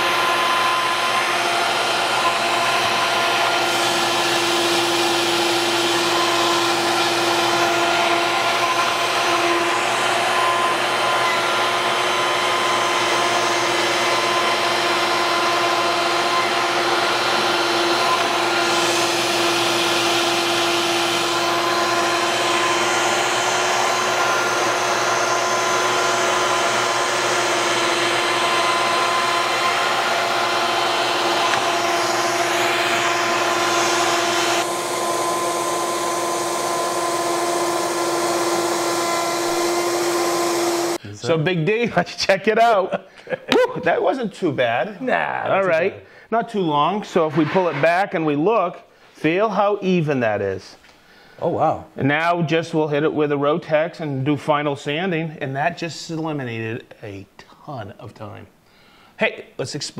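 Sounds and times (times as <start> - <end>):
router whining: 0.0 - 41.1
dust extractor suction: 0.0 - 41.3, 46.3 - 48.5.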